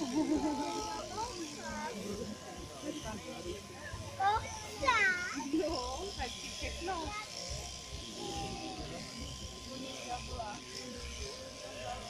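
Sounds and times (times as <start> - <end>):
electric clippers humming: 0.0 - 12.0.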